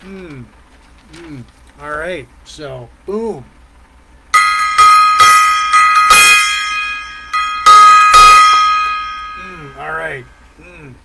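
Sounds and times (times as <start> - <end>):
small brass gong ringing: 4.3 - 10.4.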